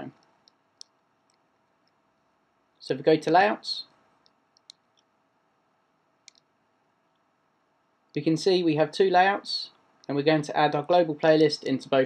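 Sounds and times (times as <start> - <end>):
computer mouse clicks: 0.1 - 2.0, 4.2 - 5.2, 6.2 - 6.5.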